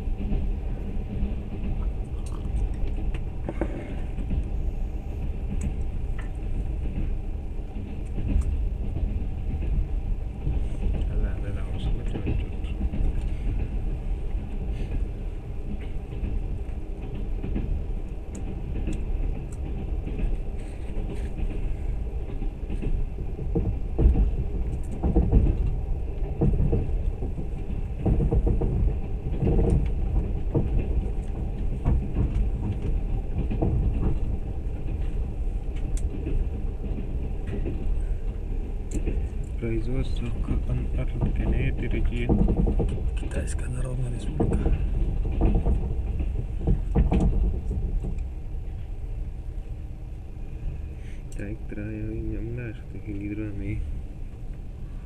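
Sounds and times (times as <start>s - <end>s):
train rumbling: 0.0s - 55.0s.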